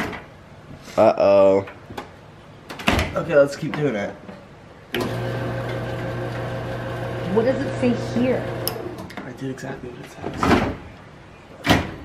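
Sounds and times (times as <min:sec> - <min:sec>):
compactor motor humming: 0:05.0 - 0:08.9.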